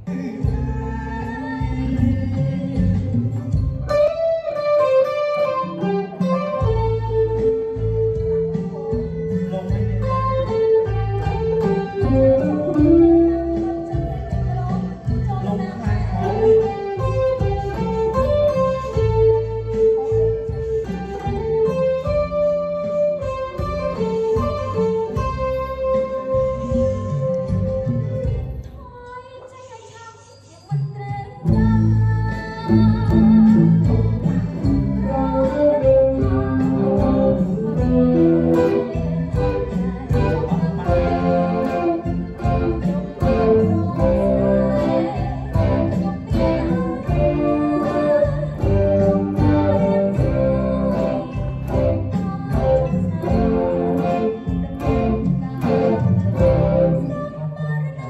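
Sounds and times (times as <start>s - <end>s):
electric guitar melody: 0.0s - 28.7s, 31.5s - 57.7s
backing music with bass line: 0.0s - 28.9s, 31.4s - 58.0s.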